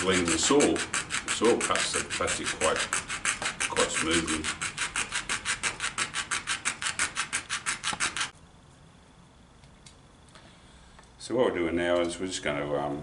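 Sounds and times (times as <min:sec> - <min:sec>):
coping saw cutting plastic: 0:00.0 - 0:08.3.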